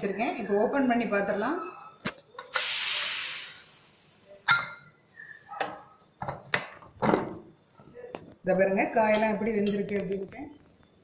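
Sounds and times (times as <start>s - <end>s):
pressure cooker steam hiss: 2.5s - 4.5s.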